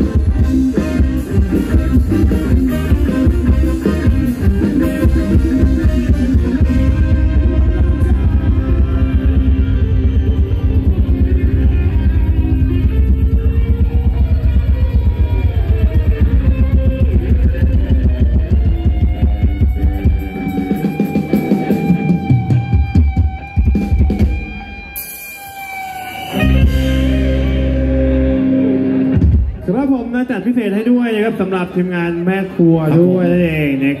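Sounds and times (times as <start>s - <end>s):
heavy bass drum beat: 0.0s - 24.9s, 26.1s - 29.7s
guitar: 0.0s - 34.0s
live band dance music: 0.0s - 34.0s.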